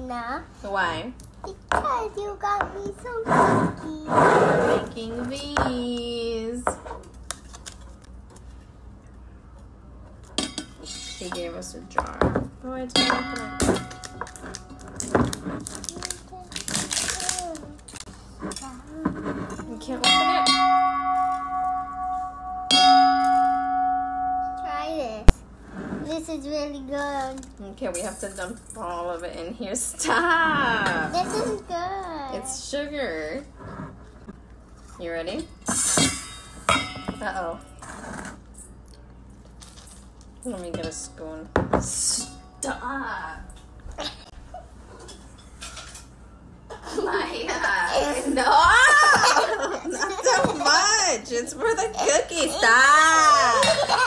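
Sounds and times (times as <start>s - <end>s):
whisk striking ringing metal bowl: 20.0s - 24.6s.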